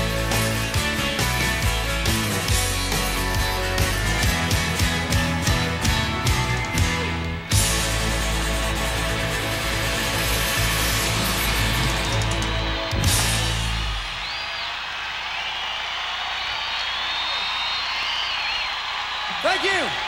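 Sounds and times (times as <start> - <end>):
live country-rock band: 0.0 - 14.2
crowd cheering and applauding: 0.0 - 20.0
high whistles: 11.5 - 19.2.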